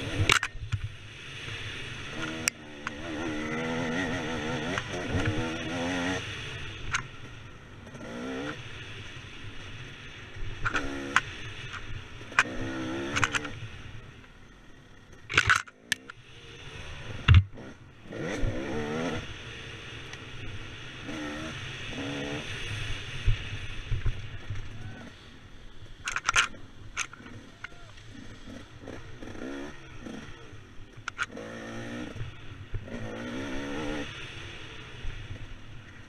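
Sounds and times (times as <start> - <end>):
dirt bike engine revving: 0.0 - 0.6, 1.2 - 23.7, 26.4 - 35.5
sharp knocks and clatter: 15.3 - 16.1.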